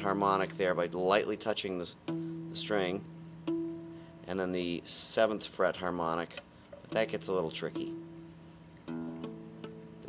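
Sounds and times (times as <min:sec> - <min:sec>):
nylon-string guitar harmonics ringing: 0:00.0 - 0:04.8, 0:06.9 - 0:08.3.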